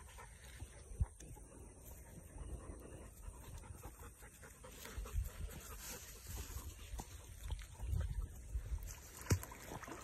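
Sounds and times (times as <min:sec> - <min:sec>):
dog panting: 0:00.0 - 0:06.6.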